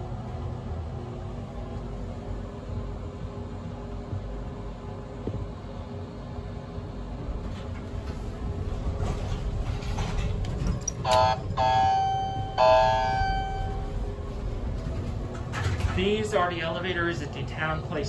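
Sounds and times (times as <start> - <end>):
low rumble: 0.0 - 17.2
elevator chime dings: 10.8 - 14.0
elevator button press: 10.9 - 13.8.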